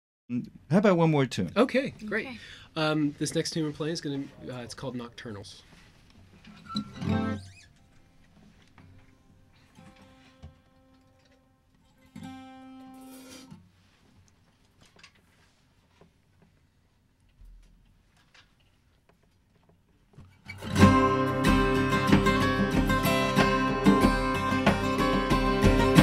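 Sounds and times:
acoustic guitar played softly: 6.5 - 8.2, 8.8 - 13.6, 20.3 - 26.0.

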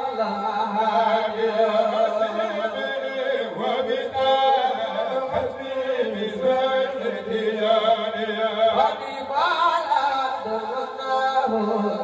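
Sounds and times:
amplified lead voice singing: 0.0 - 12.0
men chanting melodically: 0.0 - 12.0.

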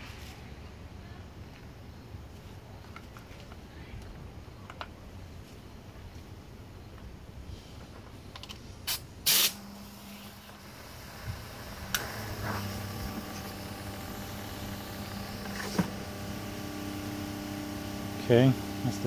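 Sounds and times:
foam generator motor hum: 9.3 - 19.0
foam generator clicks: 11.8 - 12.3.

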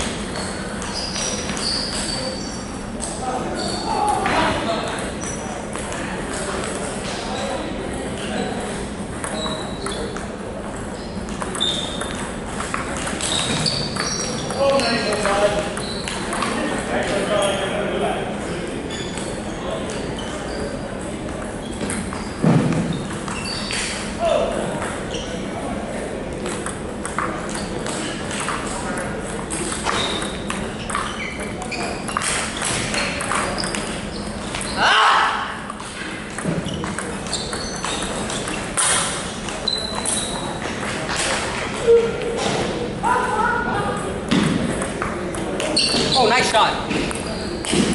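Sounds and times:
ball bouncing on table: 9.1 - 16.6, 21.3 - 24.0, 26.4 - 34.7, 35.7 - 41.6, 44.3 - 46.2, 46.9 - 47.9
table tennis ball clicking on paddles: 9.1 - 16.6, 26.4 - 34.7, 35.7 - 41.8.

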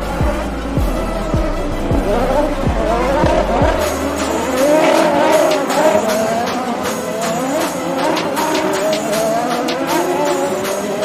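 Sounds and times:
kick-drum beat: 0.0 - 10.0
tyres squealing: 0.0 - 11.0.

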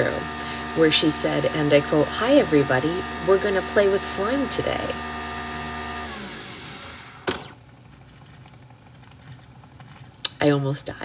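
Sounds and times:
electric motor humming: 0.0 - 7.6.

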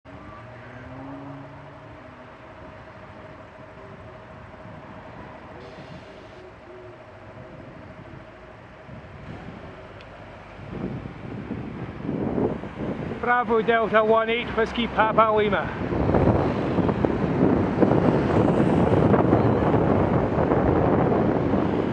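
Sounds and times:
vehicles idling in traffic: 0.1 - 21.9
wind rumbling on microphone: 0.1 - 21.9.

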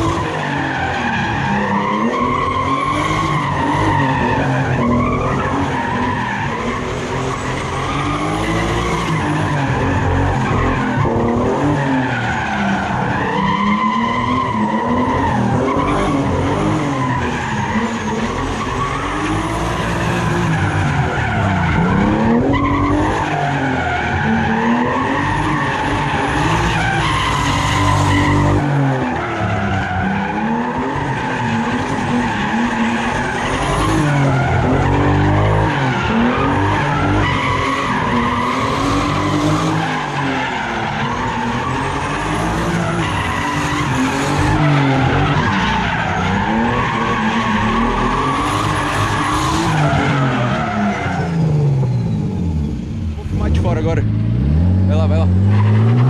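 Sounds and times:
car engine revving: 0.0 - 56.0
tyres screeching on asphalt: 0.0 - 56.0.

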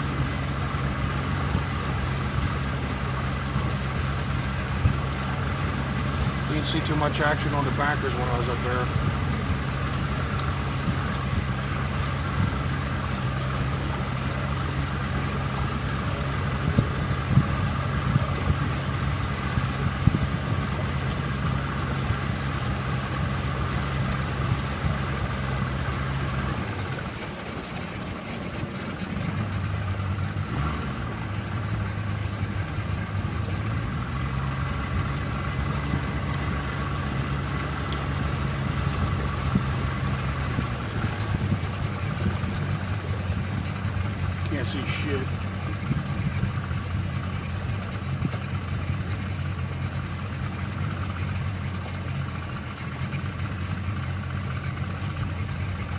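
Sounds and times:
boat motor running: 0.0 - 55.9.

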